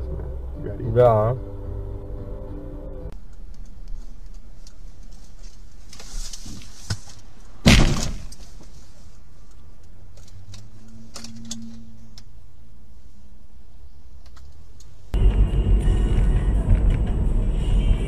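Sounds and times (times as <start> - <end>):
car engine and road noise: 0.0 - 18.0
car collision crunch: 5.0 - 9.0.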